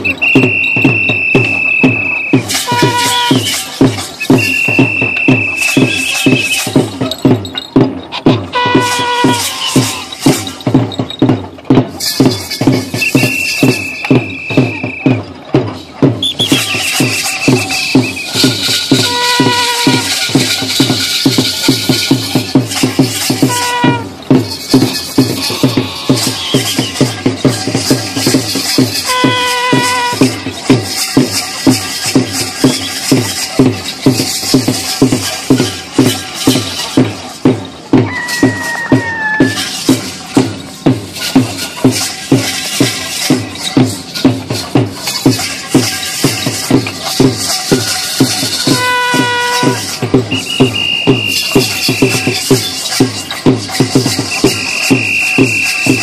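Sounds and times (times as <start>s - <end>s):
high-pitched calls or whistles: 0.0s - 7.7s, 8.6s - 11.2s, 12.0s - 15.3s, 16.2s - 22.4s, 23.3s - 27.3s, 29.0s - 30.2s, 32.6s - 33.5s, 38.0s - 40.2s, 47.6s - 56.0s
drum beaten fast: 0.0s - 56.0s.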